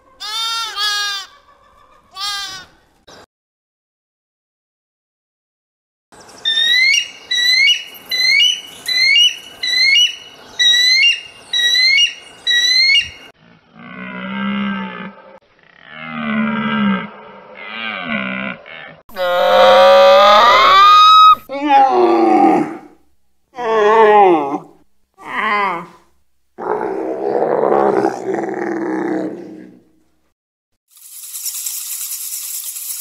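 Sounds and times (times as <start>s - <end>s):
deer calling: 6.5s - 13.2s
eagle screaming: 6.5s - 13.3s, 19.1s - 22.7s.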